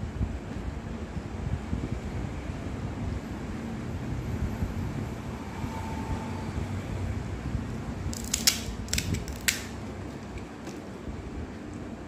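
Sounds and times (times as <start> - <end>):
crisp fried shells cracking: 8.1 - 9.8.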